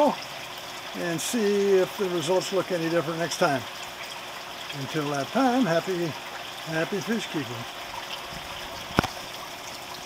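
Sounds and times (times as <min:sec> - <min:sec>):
water trickling: 0:00.0 - 0:10.0.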